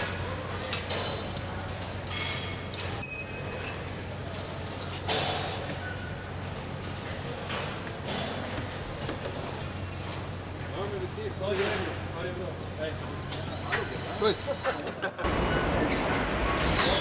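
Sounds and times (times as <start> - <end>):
clanks and shop noise: 0.0 - 17.0
people talking and laughing: 10.7 - 16.2.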